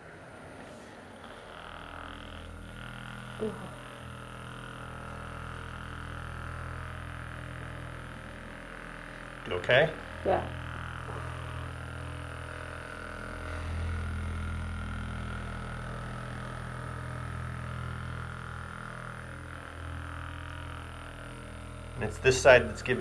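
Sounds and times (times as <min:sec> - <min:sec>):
massage gun buzzing: 0:00.0 - 0:23.0.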